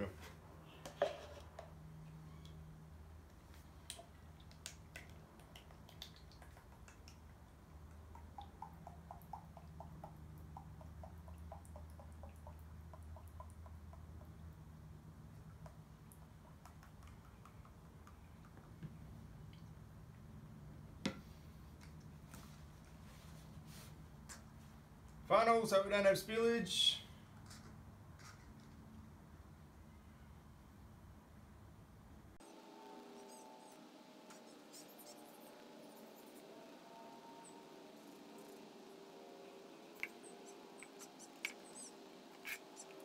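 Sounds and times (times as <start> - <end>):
faint low hum: 0.0 - 43.0.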